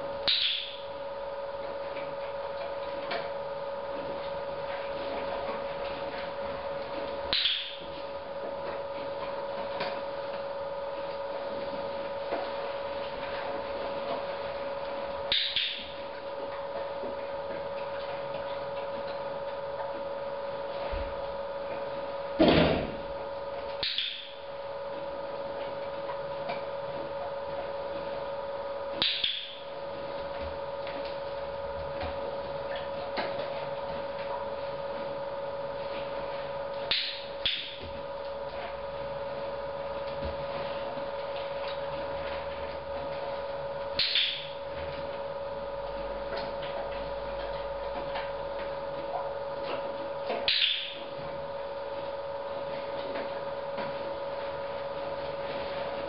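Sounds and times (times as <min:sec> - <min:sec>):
steady hum: 0:00.0 - 0:56.0.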